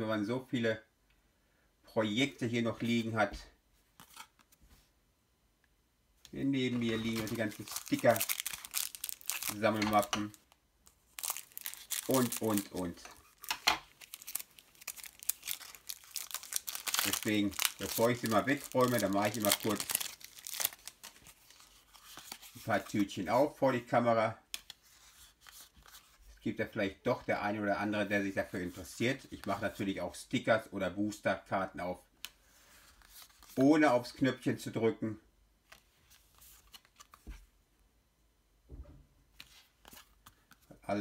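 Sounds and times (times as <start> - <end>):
soft papery rustle: 6.4 - 23.5, 32.4 - 33.7, 35.6 - 37.5
plastic wrapper crinkling: 6.6 - 23.0.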